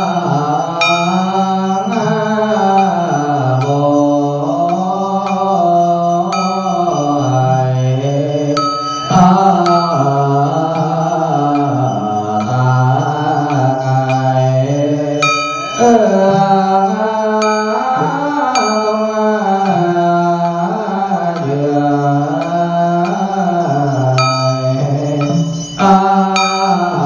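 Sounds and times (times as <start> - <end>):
struck instrument ringing: 0.0 - 27.0
voice chanting a hymn: 0.0 - 27.0.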